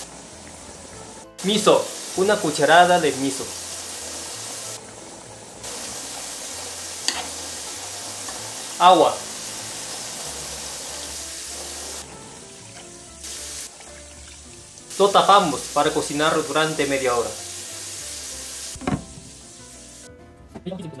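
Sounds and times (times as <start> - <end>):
hot pot sizzling: 0.0 - 20.1.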